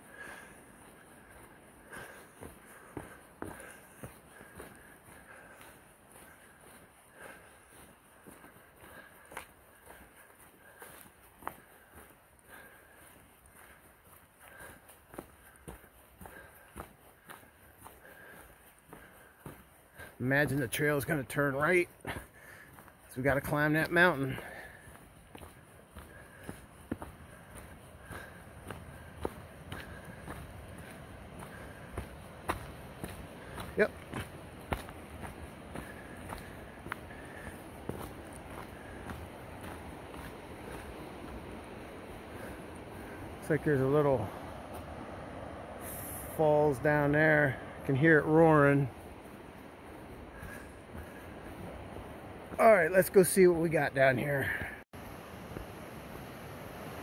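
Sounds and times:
footsteps on dry leaves: 0:21.6 - 0:43.6.

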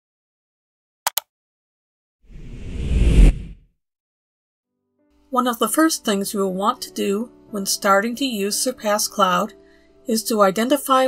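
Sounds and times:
whoosh sound effect: 0:02.3 - 0:03.6
deep rumble: 0:02.4 - 0:03.6.

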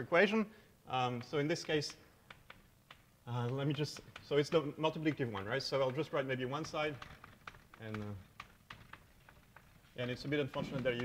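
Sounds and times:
chalk tapping on blackboard: 0:01.1 - 0:11.0.

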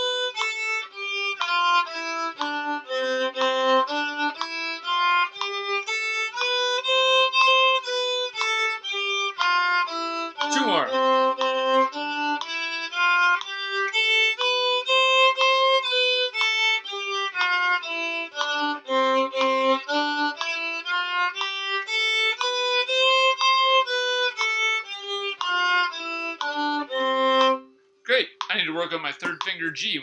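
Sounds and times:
steady violin drone: 0:00.0 - 0:27.6
violin playing a scale: 0:00.0 - 0:30.0.

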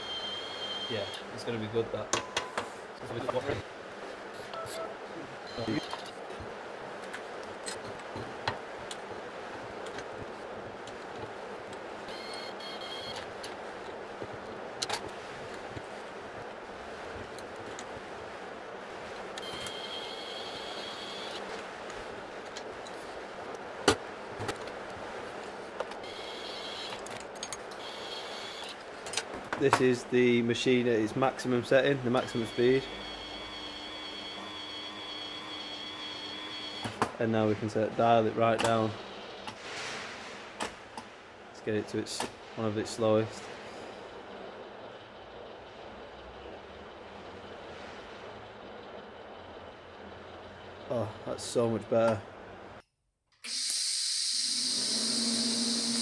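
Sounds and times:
short high-pitched whine: 0:53.4 - 0:56.0
motor humming: 0:53.5 - 0:56.0.

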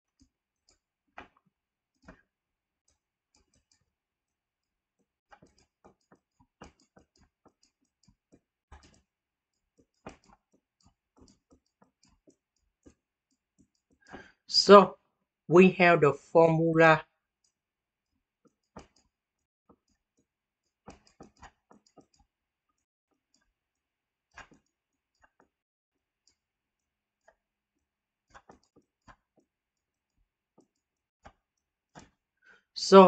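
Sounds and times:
stylus tapping on tablet: 0:05.0 - 0:09.0, 0:09.7 - 0:14.3.

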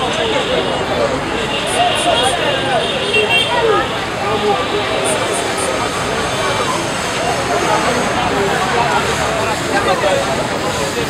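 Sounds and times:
street and traffic noise: 0:00.0 - 0:11.0
voices talking: 0:00.0 - 0:11.0.

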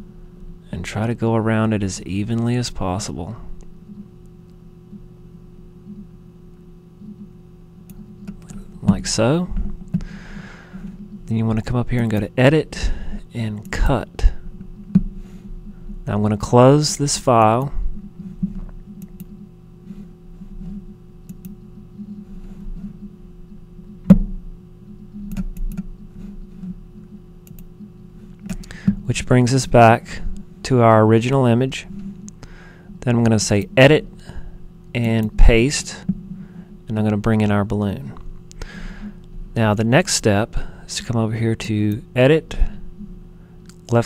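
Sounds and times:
faint electrical hum: 0:00.0 - 0:44.0
computer mouse clicks: 0:21.2 - 0:21.6, 0:25.1 - 0:25.9, 0:27.4 - 0:27.7.

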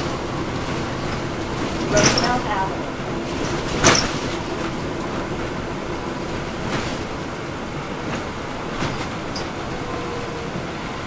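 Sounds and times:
bus diesel engine rumble: 0:00.0 - 0:11.0
road noise: 0:00.0 - 0:11.0.

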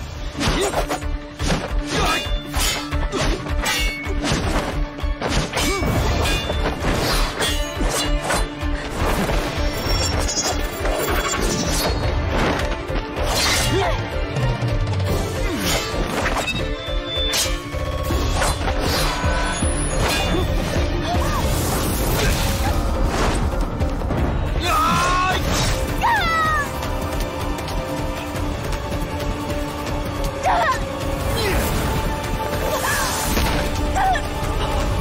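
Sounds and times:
dramatic action score: 0:00.0 - 0:35.0.

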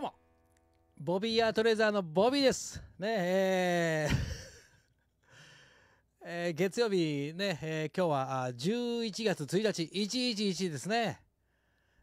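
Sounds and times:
man laughing softly: 0:03.9 - 0:05.0
faint breath: 0:05.2 - 0:06.1, 0:11.4 - 0:12.0.

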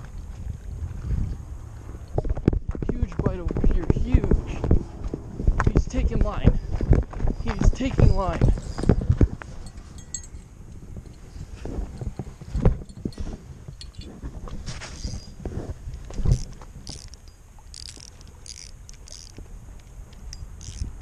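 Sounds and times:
wind rumbling on microphone: 0:00.0 - 0:21.0
fishing reel knocks and rustles: 0:05.6 - 0:21.0.

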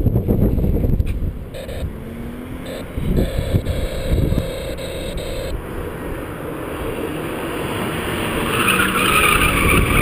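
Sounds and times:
wind buffeting microphone: 0:00.0 - 0:02.3, 0:02.9 - 0:06.2
distant car engine revving: 0:01.2 - 0:10.0.

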